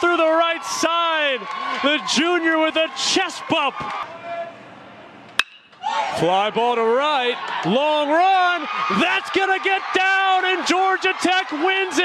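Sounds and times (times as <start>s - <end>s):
metal bat hitting ball: 5.4s - 5.8s.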